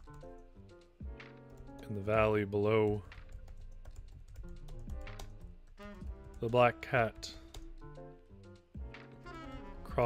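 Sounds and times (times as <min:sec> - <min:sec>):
computer keyboard typing: 0:00.0 - 0:06.7
soft background music: 0:00.0 - 0:10.0.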